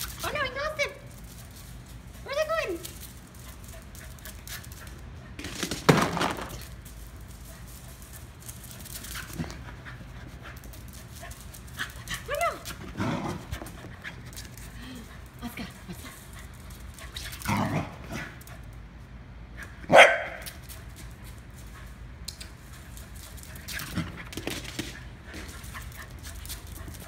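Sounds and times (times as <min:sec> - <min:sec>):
dog barking and yipping: 0:19.8 - 0:20.5.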